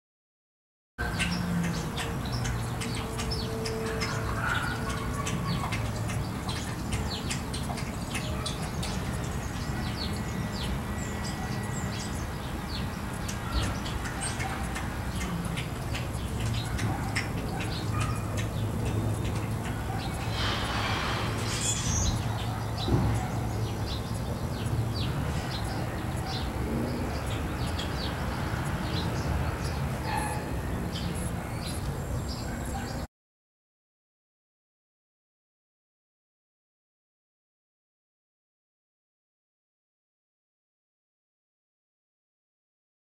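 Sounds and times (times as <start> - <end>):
small birds chirping: 1.0 - 33.1.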